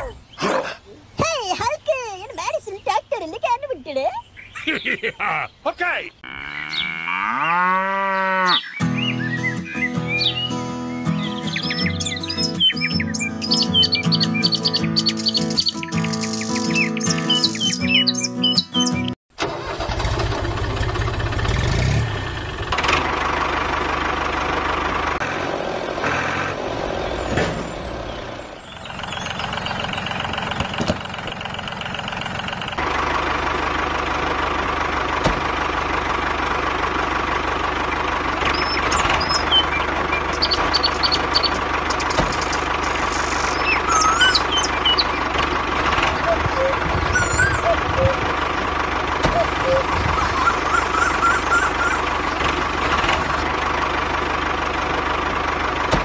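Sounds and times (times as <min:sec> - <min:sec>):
birds chirping: 0:00.0 - 0:19.2, 0:26.3 - 0:32.8, 0:37.7 - 0:53.6
music: 0:08.8 - 0:19.1.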